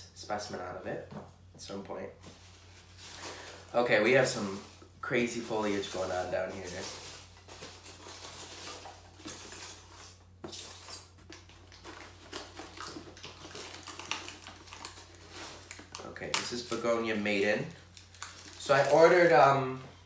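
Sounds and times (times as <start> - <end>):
packing material crackling: 2.6 - 10.2, 11.2 - 19.6.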